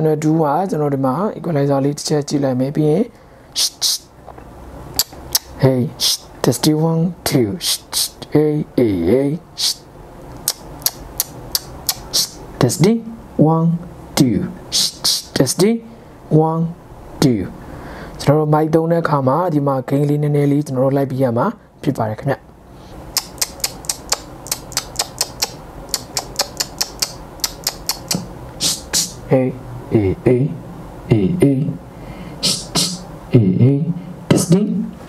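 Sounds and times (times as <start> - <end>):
short sharp clicks: 10.4 - 12.4, 23.1 - 29.1.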